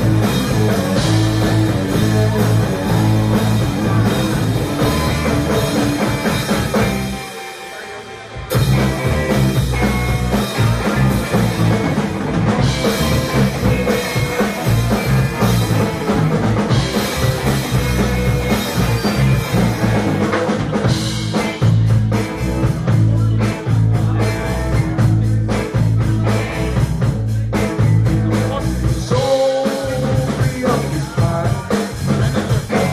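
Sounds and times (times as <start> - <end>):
bass guitar: 0.0 - 32.9
drums: 0.0 - 32.9
live rock band playing: 0.0 - 32.9.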